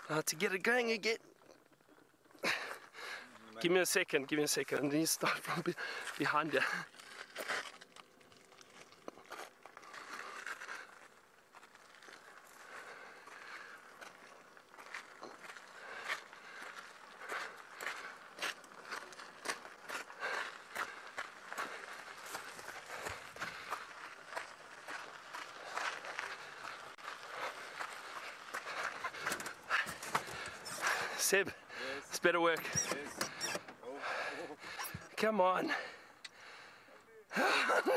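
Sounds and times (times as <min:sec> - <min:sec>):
footsteps crunching on dry grass: 0:06.2 - 0:29.2.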